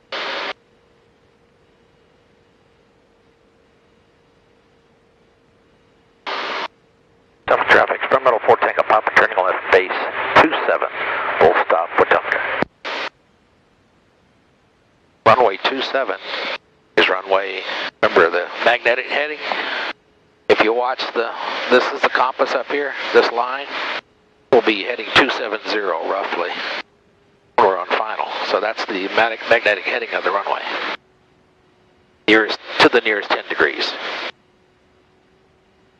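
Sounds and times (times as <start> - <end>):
radio voice transmissions: 7.4 - 13.1, 15.2 - 26.8, 27.6 - 31.0, 32.2 - 34.3.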